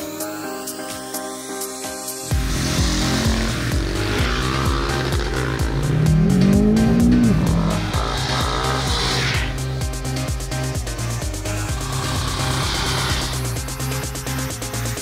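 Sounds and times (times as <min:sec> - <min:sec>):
fast beat music with heavy bass: 0:01.7 - 0:15.0
motorcycle engine revving: 0:02.3 - 0:10.0, 0:11.3 - 0:15.0.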